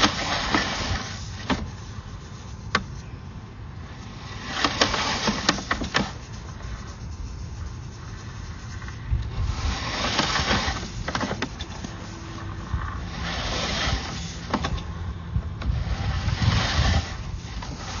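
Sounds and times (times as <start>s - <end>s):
cable scraping along pipe: 0.0s - 3.2s, 3.8s - 18.0s.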